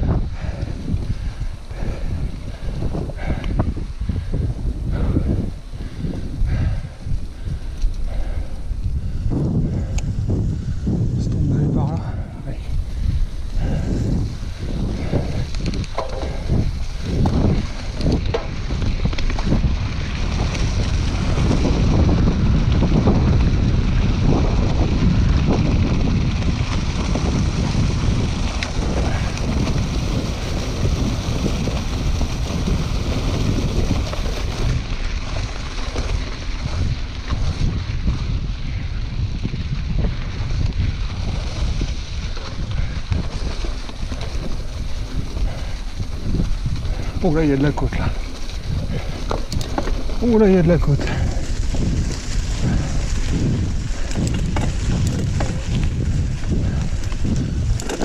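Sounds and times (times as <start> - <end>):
bike tyre rumble on dirt: 0.0 - 58.0
wind buffeting microphone: 0.0 - 58.0
bike knocking over bumps: 15.0 - 38.2, 51.0 - 58.0.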